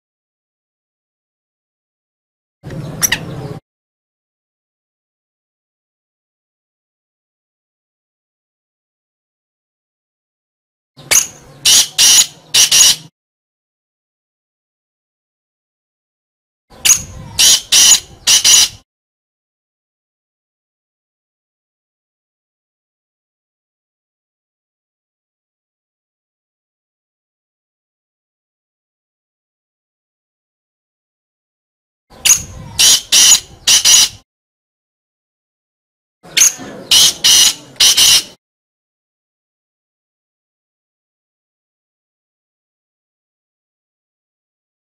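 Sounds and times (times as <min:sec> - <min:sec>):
bird calling harsh high notes: 0:11.0 - 0:13.1, 0:16.8 - 0:18.8, 0:32.1 - 0:34.2, 0:36.3 - 0:38.4.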